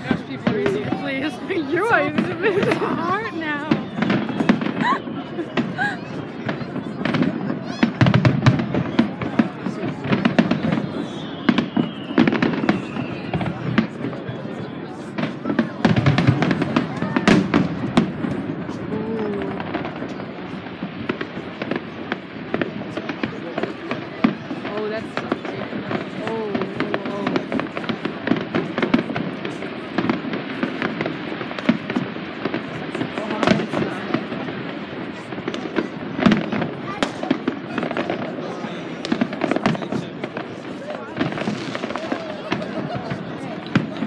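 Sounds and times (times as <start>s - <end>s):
fireworks bangs and crackles: 0.0s - 44.0s.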